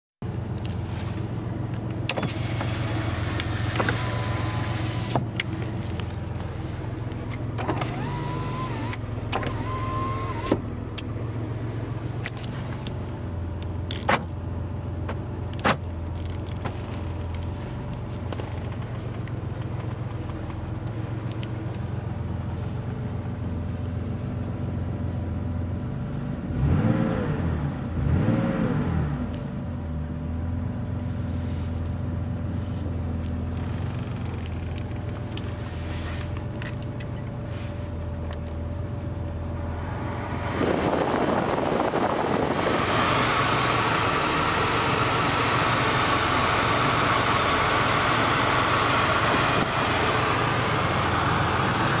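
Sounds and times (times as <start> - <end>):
engine throttle blips: 0.2 - 14.2, 26.6 - 52.0
car engine idling: 0.2 - 26.4, 29.3 - 52.0
electric window motor whining: 2.0 - 10.6.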